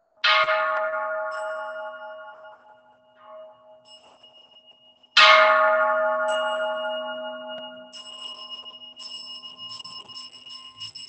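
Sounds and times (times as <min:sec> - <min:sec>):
temple bowl bell ringing: 0:00.2 - 0:11.0.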